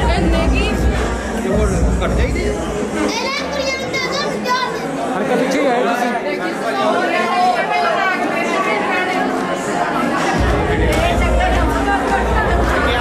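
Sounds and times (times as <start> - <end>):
overlapping chatter: 0.0 - 13.0.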